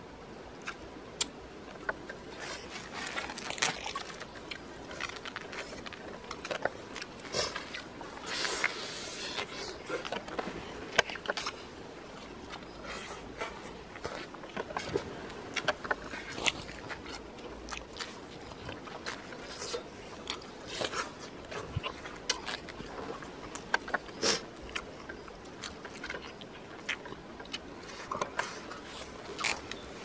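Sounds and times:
wet chewing: 0:00.6 - 0:30.0
person slurping: 0:24.1 - 0:24.5.

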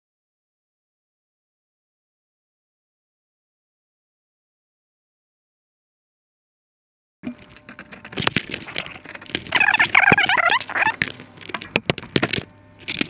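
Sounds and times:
plastic and metal parts rattling: 0:07.3 - 0:13.0
wavering pitched sound: 0:08.6 - 0:11.0.

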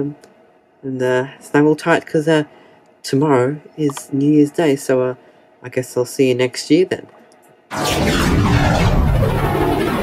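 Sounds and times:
cinematic whoosh: 0:07.7 - 0:10.0
deep rumble: 0:07.7 - 0:10.0
sweep falling in pitch: 0:07.7 - 0:10.0.

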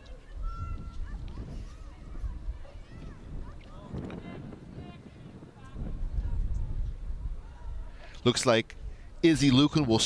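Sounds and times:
wind rumbling on microphone: 0:00.0 - 0:10.0.

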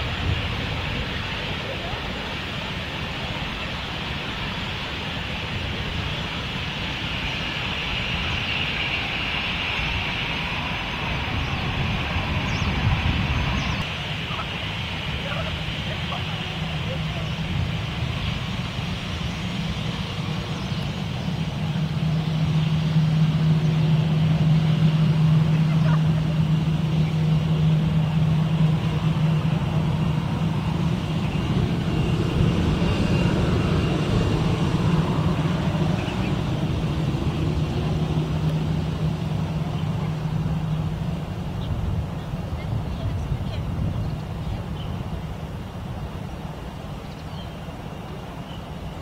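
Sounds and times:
jet engines humming: 0:00.0 - 0:49.0.

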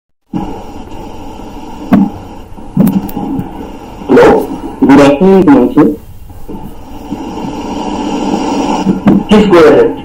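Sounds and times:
microphone hum and hiss: 0:00.3 - 0:10.0.

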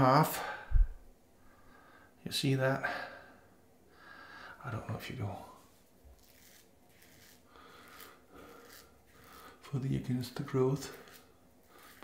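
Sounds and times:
razor scraping stubble: 0:05.7 - 0:12.0.

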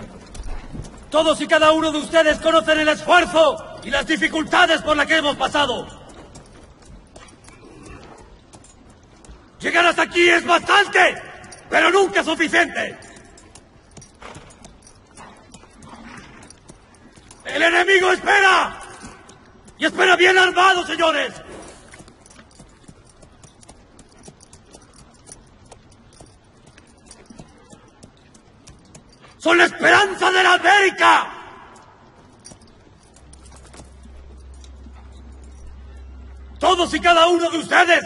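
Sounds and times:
horses standing: 0:00.0 - 0:38.0.

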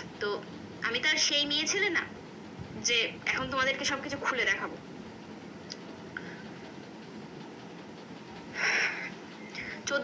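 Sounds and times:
room hiss and hum: 0:00.0 - 0:10.0.

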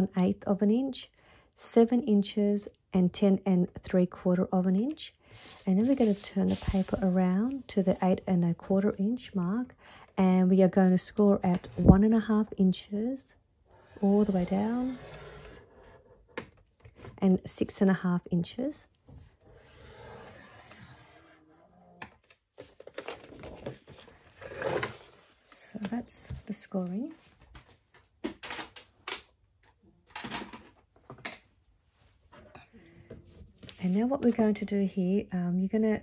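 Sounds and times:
stylus scratching paper: 0:05.4 - 0:08.3, 0:13.8 - 0:15.9.

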